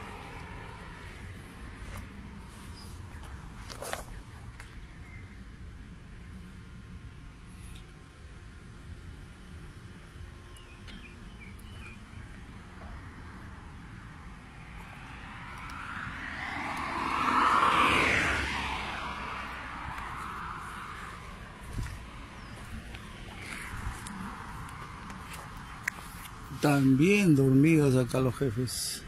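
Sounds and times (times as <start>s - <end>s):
vehicle passing by: 0.0s - 4.2s, 12.4s - 27.5s
outdoor background noise: 0.0s - 29.0s.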